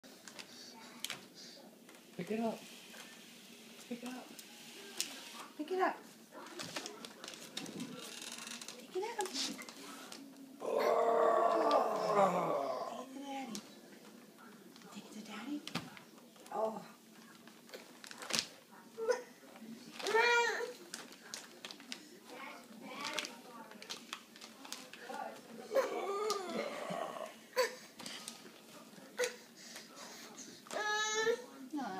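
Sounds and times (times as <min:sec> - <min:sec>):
toddler straining vocal sound: 0:10.6 - 0:13.1.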